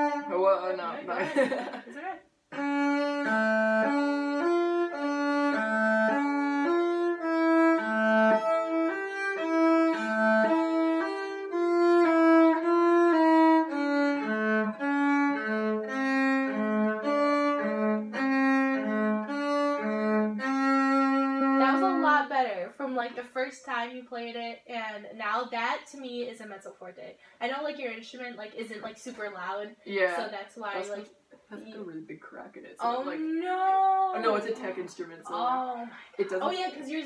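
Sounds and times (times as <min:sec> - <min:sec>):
cello bowed slow melody: 0:00.0 - 0:00.9, 0:02.5 - 0:22.4.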